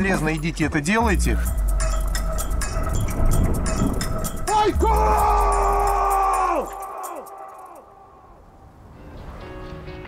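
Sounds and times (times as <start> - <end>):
long yell-like cry with echoes: 4.7 - 8.6.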